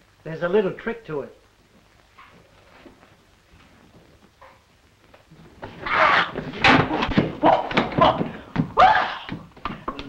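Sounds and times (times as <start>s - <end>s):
soundtrack hiss: 0.0s - 7.2s
man yelping: 7.4s - 9.3s.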